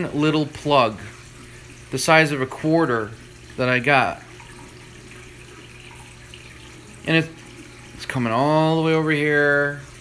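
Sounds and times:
water rushing and trickling: 0.0 - 10.0.

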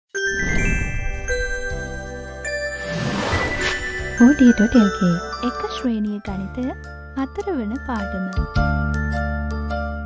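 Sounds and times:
chiming intro jingle: 0.2 - 6.0.

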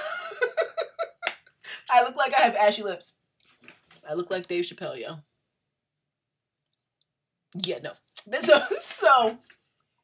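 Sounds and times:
woman's voice: 1.7 - 3.1, 4.1 - 5.2, 7.6 - 9.4.

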